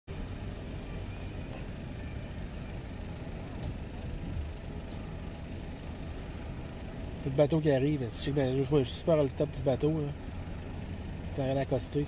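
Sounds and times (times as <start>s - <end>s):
ferry engines rumbling: 0.1s - 12.0s.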